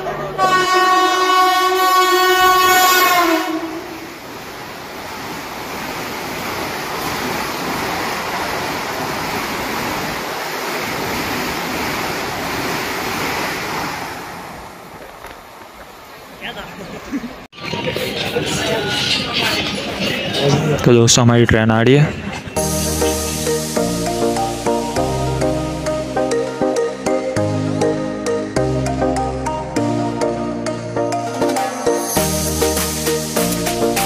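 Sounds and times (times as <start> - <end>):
train horn: 0.0 - 4.2
train coaches rushing past: 0.0 - 25.0, 31.1 - 34.0.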